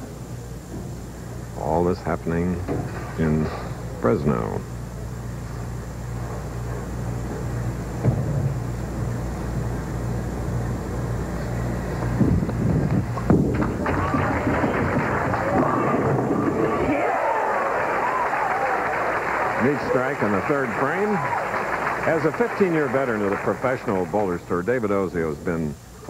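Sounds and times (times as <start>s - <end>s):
low hum: 0.0s - 26.0s
bowling ball crashing into pins: 13.2s - 17.0s
crowd cheering and applause: 13.6s - 24.3s
crowd murmur: 13.6s - 24.4s.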